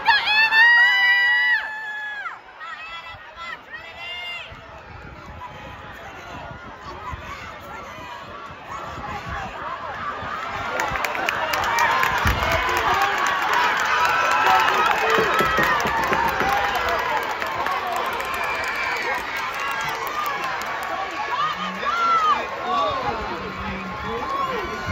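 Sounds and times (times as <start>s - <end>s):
spectators cheering and yelling: 0.0s - 24.9s.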